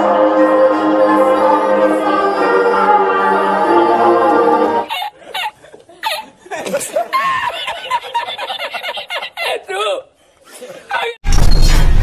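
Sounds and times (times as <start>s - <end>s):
man laughing hard: 4.9s - 9.8s.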